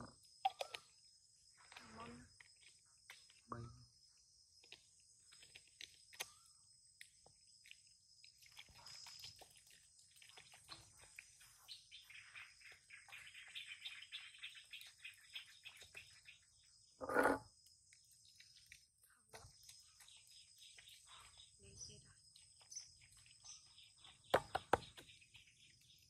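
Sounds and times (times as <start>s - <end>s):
insects droning: 0.0s - 26.0s.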